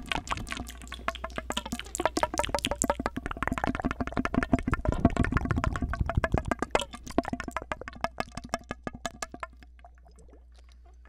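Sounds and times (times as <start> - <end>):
mouth clicks and pops through tube: 0.0 - 11.0.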